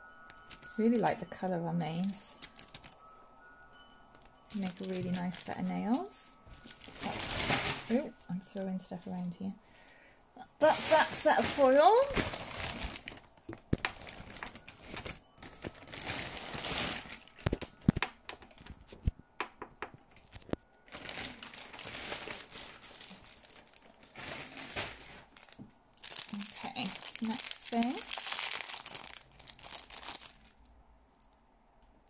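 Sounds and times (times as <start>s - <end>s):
plastic bags crinkling: 0.4s - 3.2s, 4.2s - 8.8s, 10.6s - 19.1s, 20.1s - 30.7s
items knocking on table: 19.4s - 20.0s.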